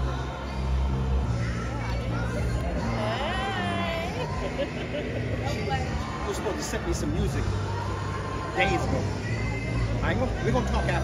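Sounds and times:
murmur of conversation: 0.0s - 11.0s.

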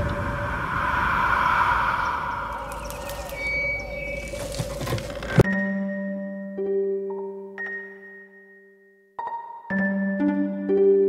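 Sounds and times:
hissing wash: 0.0s - 5.2s
held drone tone: 0.0s - 5.4s
low rumble: 0.0s - 5.4s.

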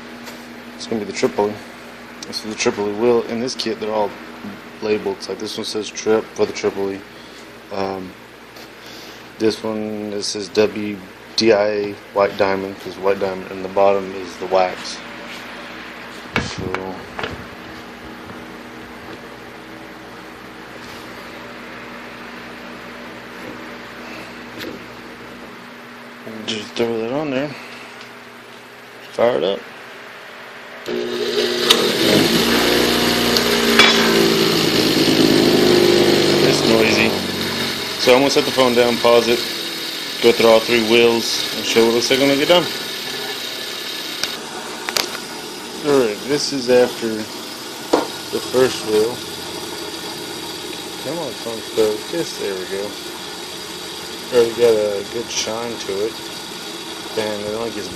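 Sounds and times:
steady low hum: 0.0s - 57.9s
bench grinder motor whirring: 30.8s - 57.9s.

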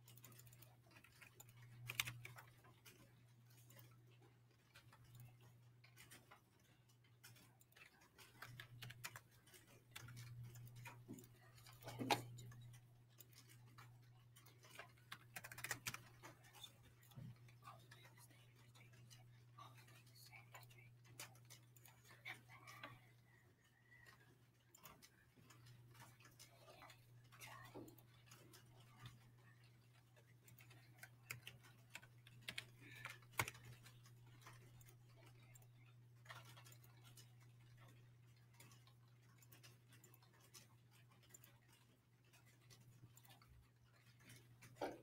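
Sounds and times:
faint scattered clicks: 0.0s - 45.0s
low steady hum: 0.0s - 45.0s.

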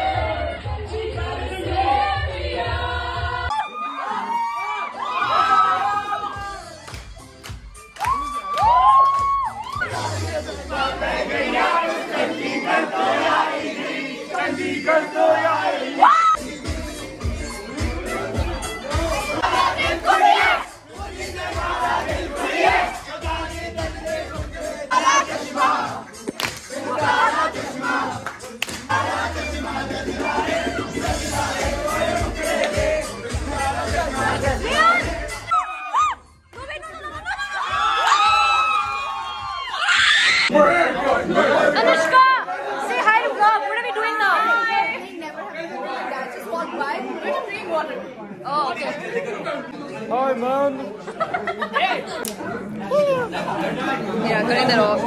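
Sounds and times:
people chattering and exclaiming: 0.0s - 55.0s
thumping music beat: 6.3s - 12.1s, 16.4s - 35.5s
crowd shouting together: 8.6s - 47.9s.

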